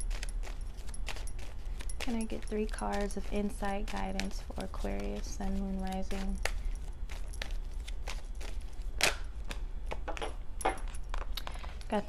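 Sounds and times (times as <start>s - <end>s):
cards being shuffled: 0.0s - 10.3s
steady low hum: 0.0s - 12.0s.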